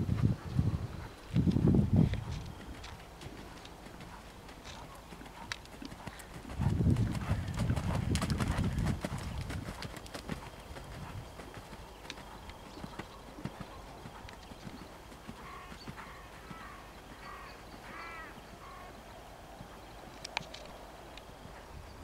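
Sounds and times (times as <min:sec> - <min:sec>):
horse hoofbeats on sand: 0:01.0 - 0:16.8.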